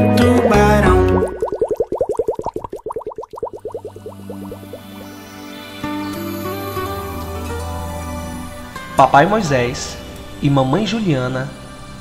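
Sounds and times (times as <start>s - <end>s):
cartoon bubble bloops: 0.3s - 5.2s.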